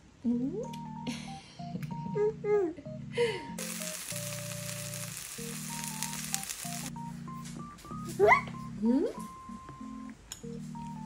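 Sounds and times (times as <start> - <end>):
pancake sizzling in oil: 3.6 - 6.9.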